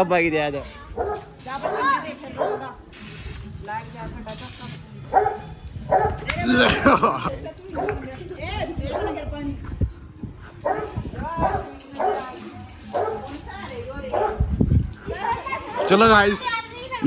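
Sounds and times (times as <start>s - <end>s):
people talking and calling out: 0.0s - 17.0s.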